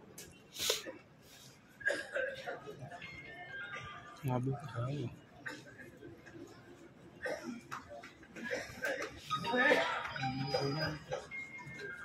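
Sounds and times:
hubbub of voices: 0:00.0 - 0:12.0.

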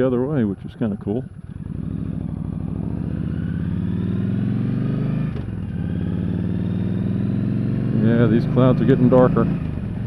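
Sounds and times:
motorcycle engine accelerating: 0:00.0 - 0:10.0.

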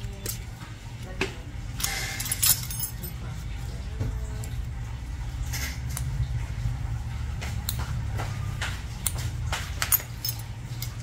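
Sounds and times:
metal instruments clinking: 0:01.7 - 0:03.6, 0:09.0 - 0:11.0.

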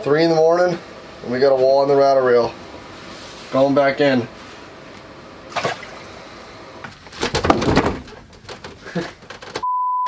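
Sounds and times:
water splashing in a hole: 0:05.5 - 0:06.1.

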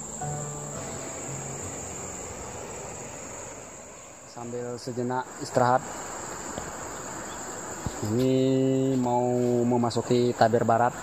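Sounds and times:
background hiss: 0:00.0 - 0:11.0
high-pitched insect chorus: 0:00.0 - 0:11.0.

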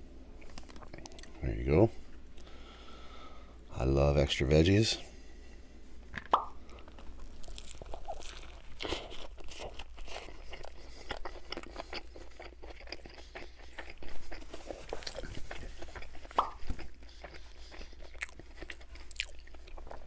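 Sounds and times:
crunchy chewing: 0:00.4 - 0:01.4, 0:06.6 - 0:20.0
biting sandwich: 0:06.2 - 0:20.0.

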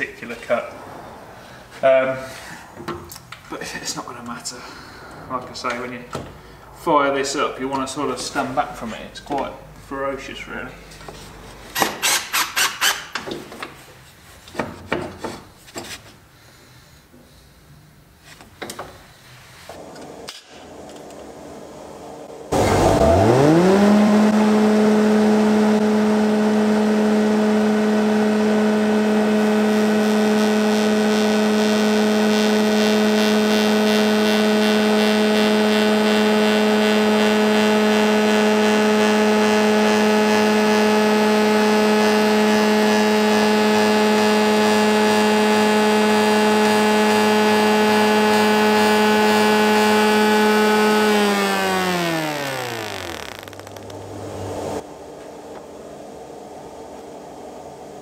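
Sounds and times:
spindle moulder whining: 0:19.6 - 0:54.8.

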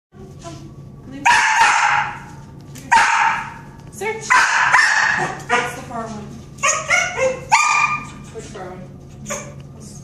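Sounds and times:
dog barking: 0:01.2 - 0:02.3, 0:02.9 - 0:03.7, 0:04.3 - 0:05.8, 0:06.6 - 0:08.2.

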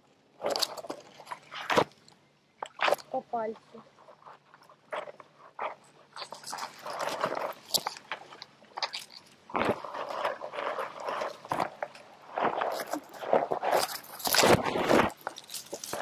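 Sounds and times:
dry grass and leaves rustling: 0:00.4 - 0:16.0
twigs snapping: 0:06.2 - 0:16.0.

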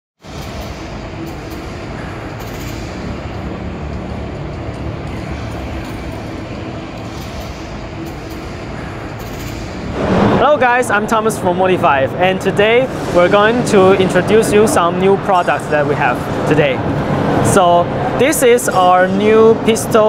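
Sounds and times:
ventilation noise: 0:00.2 - 0:20.0
crowd noise: 0:10.0 - 0:20.0.

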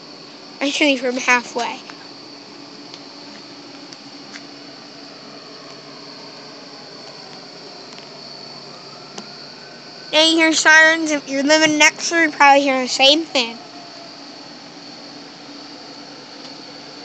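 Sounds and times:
background hiss: 0:00.0 - 0:17.0
distant siren wailing: 0:00.0 - 0:17.0.

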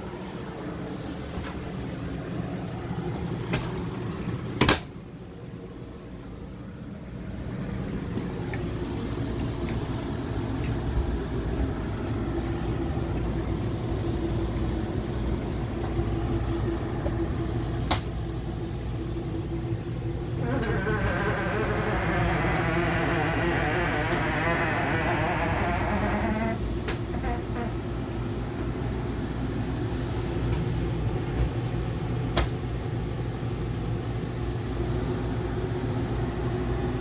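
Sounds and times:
low mechanical rumble and hum: 0:00.0 - 0:37.0.

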